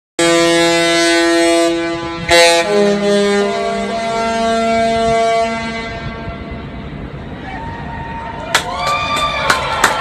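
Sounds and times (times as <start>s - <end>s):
ship horn chord: 0.2s - 7.4s.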